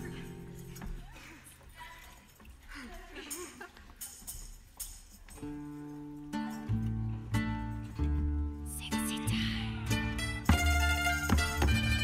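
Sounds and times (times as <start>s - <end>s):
string ensemble playing chords: 9.9s - 12.0s.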